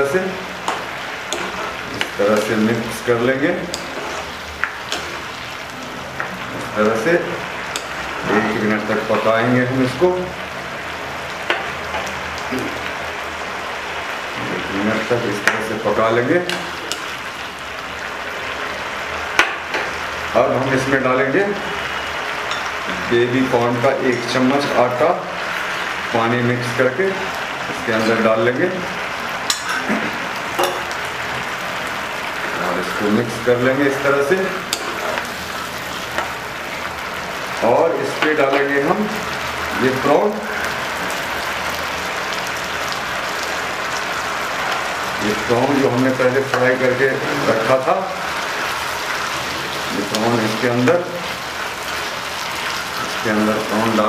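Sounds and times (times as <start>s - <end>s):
sauce bubbling and sizzling in pan: 0.0s - 54.0s.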